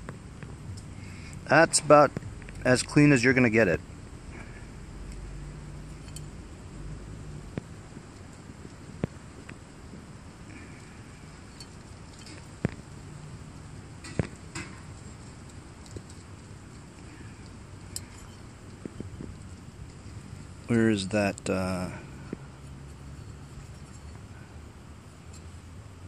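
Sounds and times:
light metallic clicks: 5.1 - 6.3.

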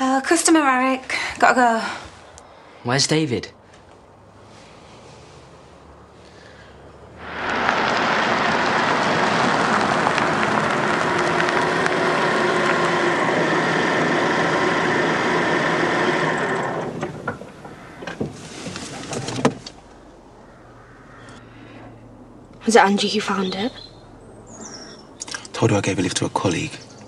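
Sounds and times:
car engine and tyre noise: 3.6 - 27.0.

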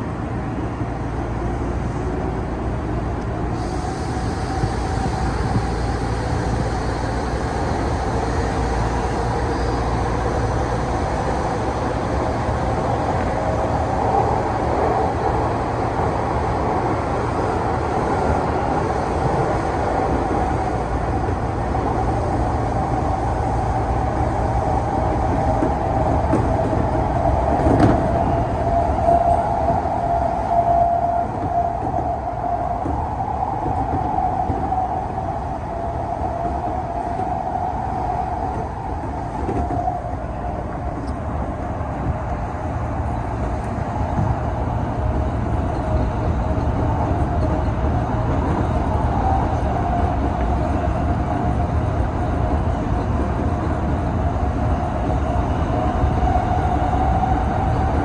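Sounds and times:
train wheels rumbling on rail: 0.0 - 58.0
train whine: 0.0 - 58.0.

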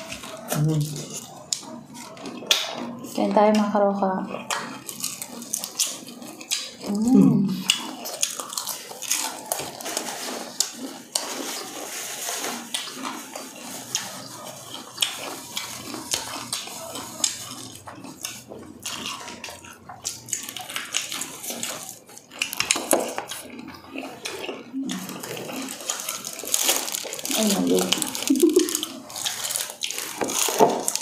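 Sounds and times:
crunching fried chicken: 0.0 - 31.0
wet chewing: 0.0 - 31.0.

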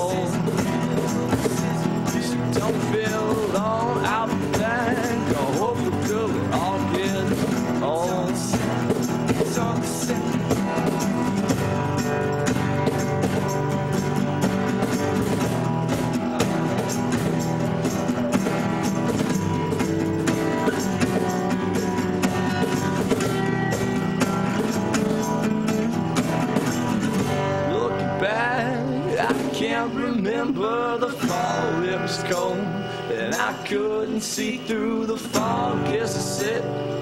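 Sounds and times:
person singing: 0.0 - 11.3, 27.6 - 37.0
cajon beat: 0.0 - 37.0
strummed acoustic guitars: 0.0 - 37.0.

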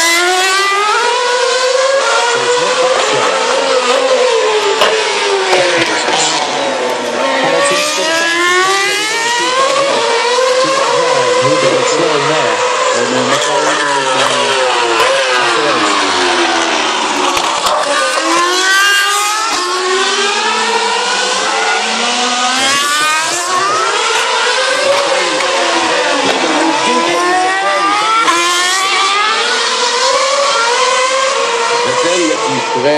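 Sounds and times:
racing cars accelerating past: 0.0 - 32.9.

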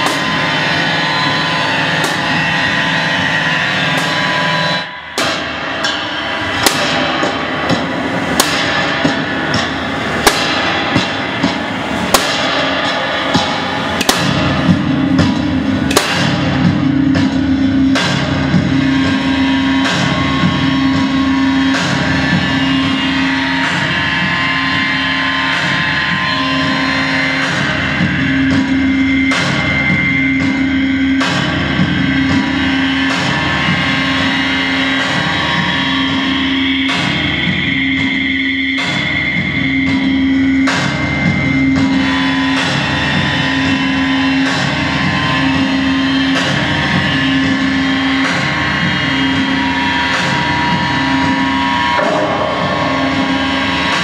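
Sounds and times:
distorted noise music: 0.0 - 54.0
high whine: 0.0 - 54.0
pulsing low tone: 0.0 - 54.0.

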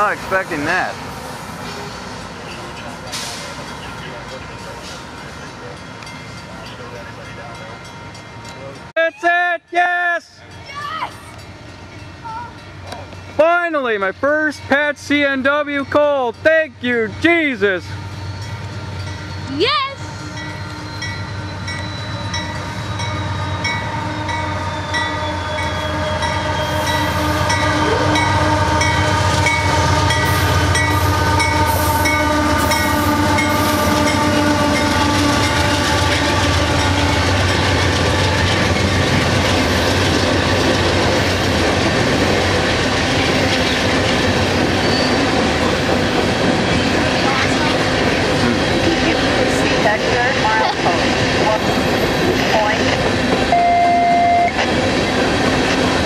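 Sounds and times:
rumble and clatter of rail cars: 0.0 - 8.9, 9.6 - 56.0
diesel locomotive engines: 0.0 - 56.0.

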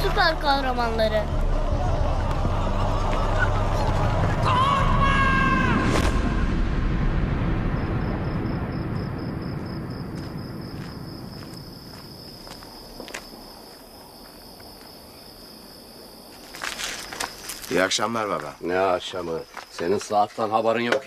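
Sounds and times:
deep explosion rumble: 5.6 - 11.9
crickets chirping: 6.8 - 21.0
footsteps on cobblestones: 9.6 - 15.0.

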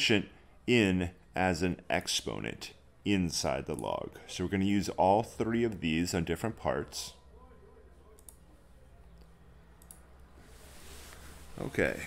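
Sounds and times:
computer mouse clicks: 8.1 - 8.5, 9.1 - 10.3.

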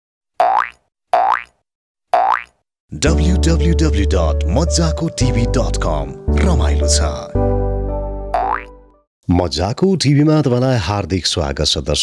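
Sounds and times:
cartoon boing: 8.4 - 8.7.

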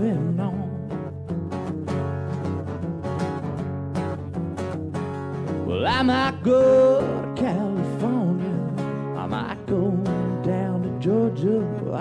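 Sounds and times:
person singing: 0.0 - 1.1, 5.6 - 12.0
acoustic guitars playing: 0.0 - 12.0.

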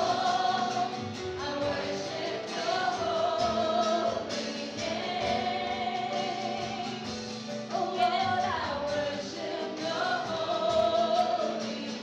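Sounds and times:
acoustic guitar: 0.0 - 12.0
piano: 0.0 - 12.0
women singing together: 0.0 - 12.0.

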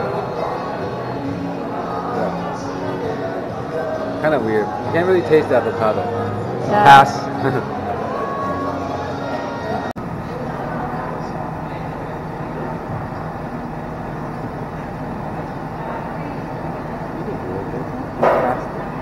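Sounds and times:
cotton candy machine humming: 0.0 - 19.0
room chatter: 0.0 - 19.0.

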